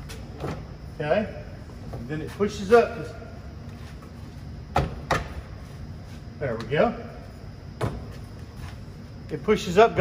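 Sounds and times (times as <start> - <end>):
workshop background noise: 0.0 - 10.0.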